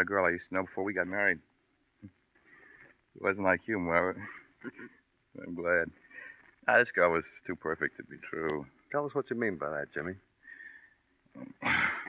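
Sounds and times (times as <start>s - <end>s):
man's breathy laugh: 11.6s - 12.0s.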